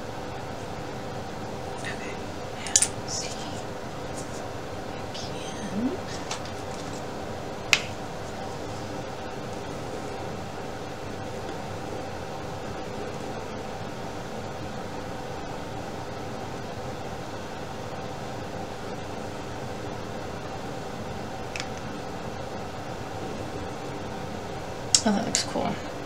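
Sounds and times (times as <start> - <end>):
mechanical room hum: 0.0 - 26.0.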